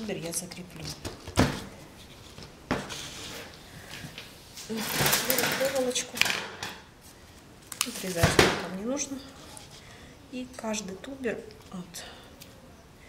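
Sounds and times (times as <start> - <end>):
rustling on work table: 0.0 - 7.2.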